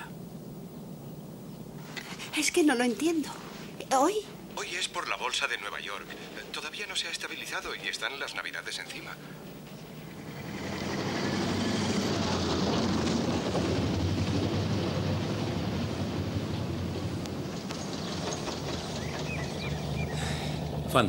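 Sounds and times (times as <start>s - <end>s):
tyres rumbling on cobblestones: 9.4s - 21.0s
car engine running: 10.0s - 21.0s.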